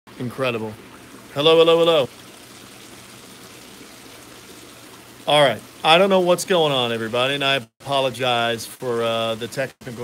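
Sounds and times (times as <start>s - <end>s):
running water: 0.1s - 10.0s.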